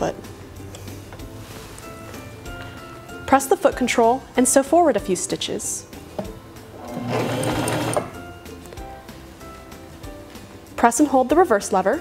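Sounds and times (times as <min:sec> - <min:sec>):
background music: 0:00.0 - 0:12.0
sewing machine stitching: 0:06.8 - 0:08.2.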